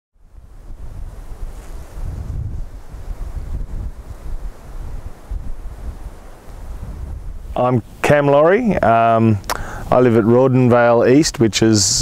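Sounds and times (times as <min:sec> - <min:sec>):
wind buffeting microphone: 0:00.2 - 0:10.6.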